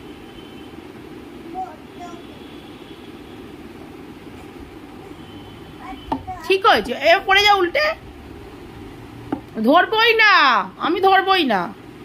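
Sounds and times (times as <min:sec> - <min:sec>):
low rushing hum: 0:03.2 - 0:12.0.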